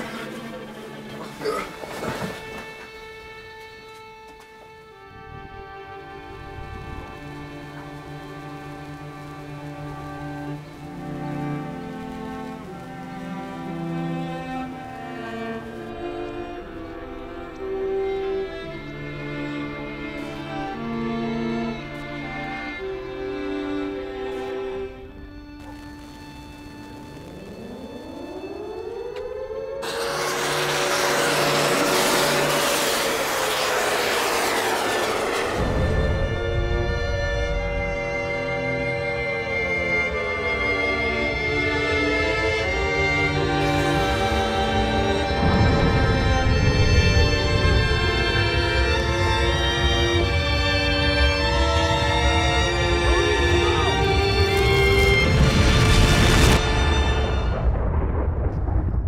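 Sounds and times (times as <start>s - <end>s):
bowed strings sustained chords: 0.0s - 58.2s
rising pitch sweeps: 24.6s - 58.0s
dense rushing sound: 29.8s - 38.1s.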